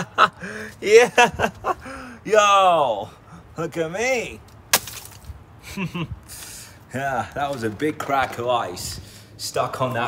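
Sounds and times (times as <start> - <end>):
man exclaiming: 2.2 - 3.1.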